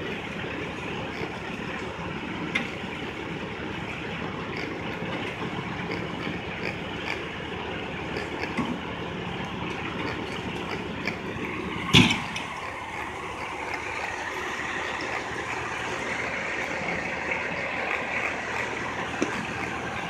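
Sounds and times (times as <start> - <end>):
heavy engines idling: 0.0 - 20.0
traffic: 0.0 - 20.0.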